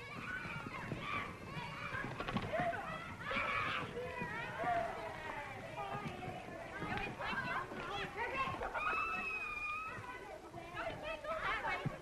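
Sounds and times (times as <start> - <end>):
children shouting at play: 0.0 - 12.0.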